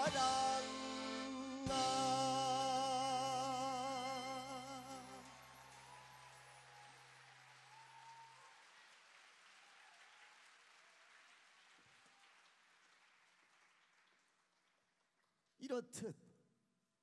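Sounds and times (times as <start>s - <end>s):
audience applause: 4.9s - 15.0s.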